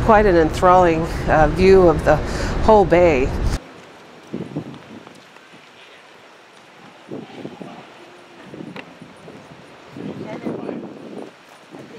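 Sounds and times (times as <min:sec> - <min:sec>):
distant voices: 0:00.0 - 0:11.9.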